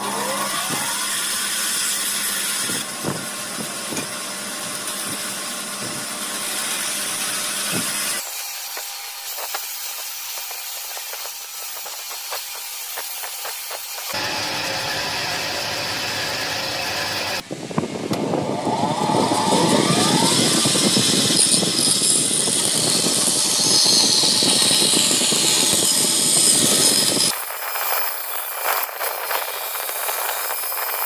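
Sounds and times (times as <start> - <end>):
bandsaw cutting wood: 0.0 - 4.0, 4.7 - 14.9, 18.8 - 31.0.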